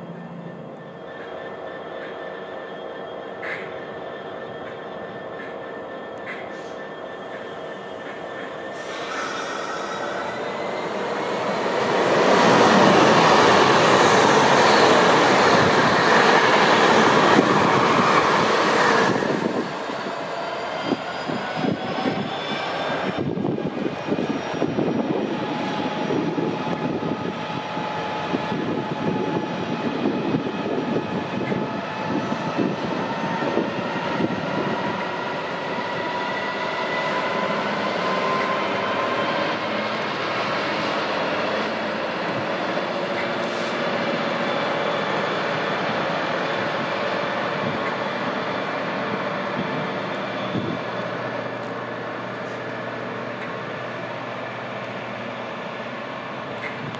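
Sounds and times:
diesel locomotive engine: 0:00.0 - 0:56.9
express train rushing past: 0:00.0 - 0:56.9
train wheels clattering on rails: 0:04.6 - 0:20.0, 0:37.3 - 0:48.5.

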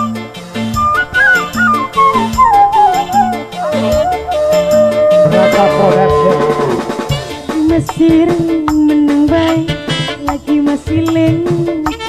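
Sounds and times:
live band music: 0:00.6 - 0:12.0
flute descending run: 0:00.8 - 0:07.7.

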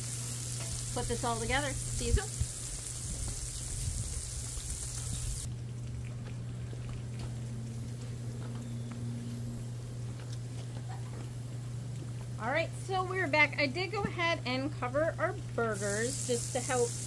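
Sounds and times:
meat sizzling on a griddle: 0:00.0 - 0:05.5, 0:15.7 - 0:17.0
low hum: 0:00.0 - 0:15.8.

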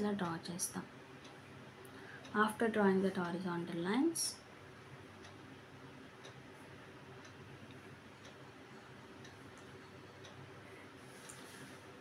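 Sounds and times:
faint regular ticking: 0:00.0 - 0:12.0
low steady hum: 0:00.0 - 0:12.0.

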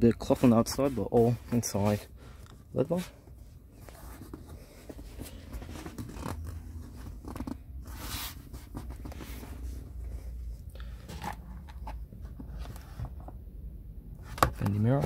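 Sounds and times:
hand rubbing leather seat: 0:00.2 - 0:02.0.

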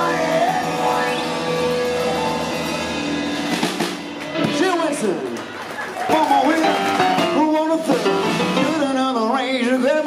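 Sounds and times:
drum and cymbal hits: 0:00.0 - 0:05.0
live band playing: 0:00.0 - 0:10.0.

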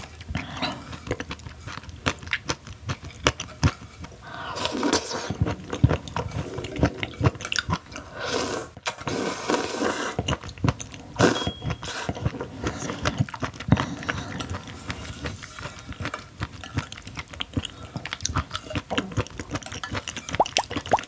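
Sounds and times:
slurping and wet chewing: 0:00.0 - 0:21.0.

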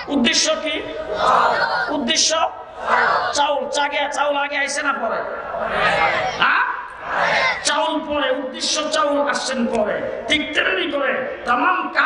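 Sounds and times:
man preaching over loudspeaker: 0:00.0 - 0:01.2, 0:01.8 - 0:05.5, 0:06.4 - 0:07.0, 0:07.6 - 0:12.0
crowd shouting in unison: 0:00.8 - 0:03.9, 0:05.2 - 0:08.0.

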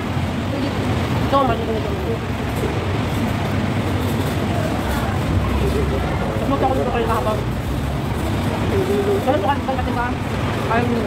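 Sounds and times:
low rumble of city traffic: 0:00.0 - 0:11.0
faint voices: 0:00.3 - 0:11.0.

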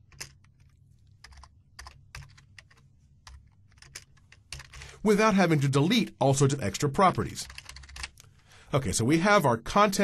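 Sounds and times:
faint keyboard typing: 0:00.0 - 0:05.0, 0:07.0 - 0:08.4.

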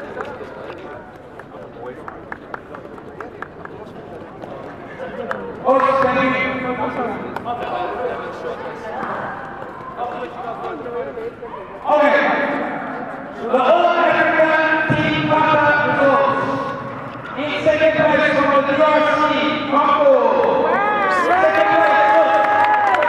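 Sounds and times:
voices in large hall: 0:00.0 - 0:23.0.

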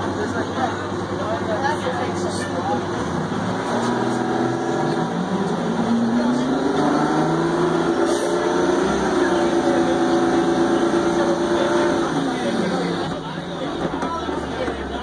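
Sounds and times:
bus diesel engine accelerating: 0:00.0 - 0:15.0.

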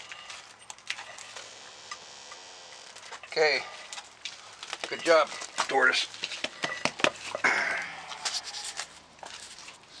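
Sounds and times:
sticks scraping on floor: 0:08.2 - 0:09.8.

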